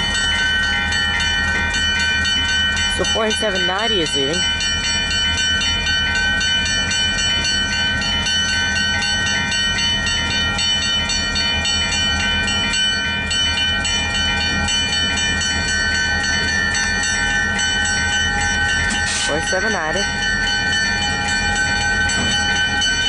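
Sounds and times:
crossing warning bell ringing: 0.0 - 23.0
diesel locomotive rumble: 0.0 - 23.0.

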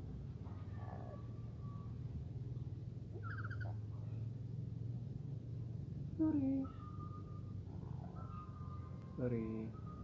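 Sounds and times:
parrot call: 3.2 - 3.8.

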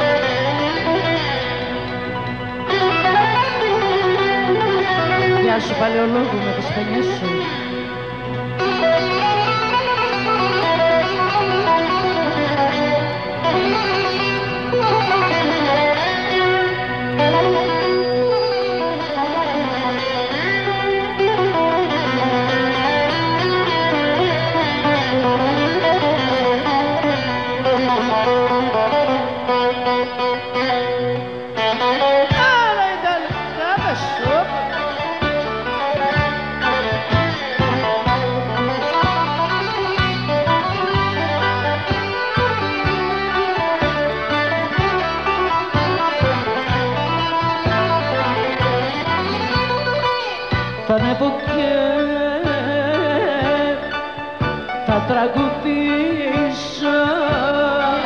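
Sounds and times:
band accompaniment with bass: 0.0 - 58.0
bouzouki melody: 0.0 - 58.0.

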